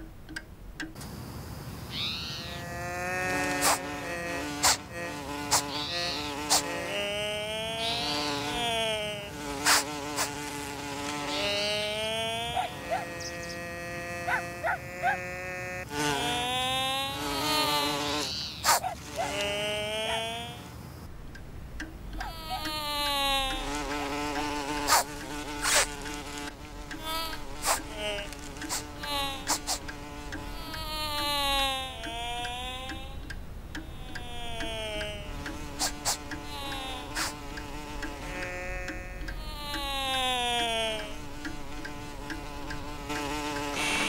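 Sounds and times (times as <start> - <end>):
sharp clicks: 0.0 - 1.2, 21.0 - 44.0
buzzing tones sliding down in pitch: 1.9 - 44.0.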